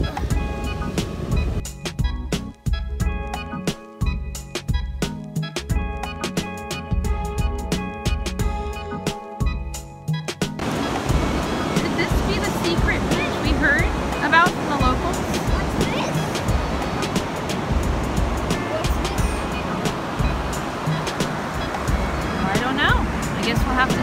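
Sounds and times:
background music: 0.0s - 24.0s
ocean surf breaking on sand: 10.6s - 24.0s
wind rumbling on microphone: 10.6s - 24.0s.

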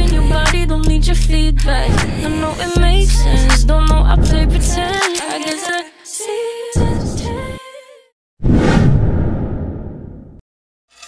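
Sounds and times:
whoosh sound effect: 8.4s - 10.4s.

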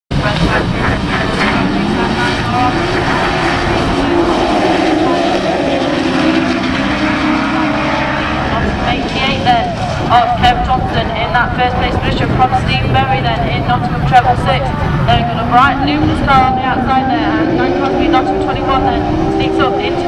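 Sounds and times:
race car engines revving: 0.1s - 20.0s.

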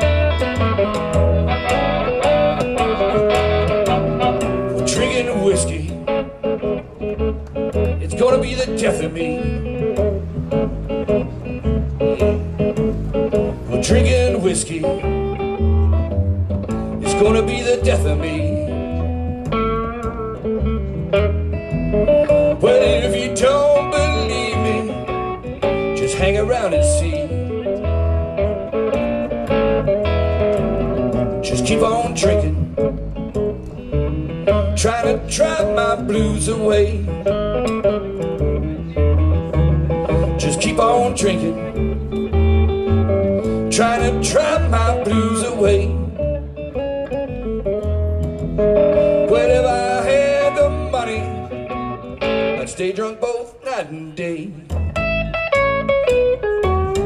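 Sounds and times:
electric guitar: 0.0s - 57.0s
upright bass plucked: 0.0s - 57.0s.

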